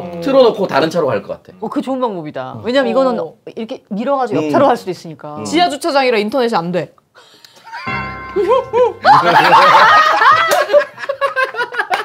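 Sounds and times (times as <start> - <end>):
group of people laughing: 7.7 - 12.0.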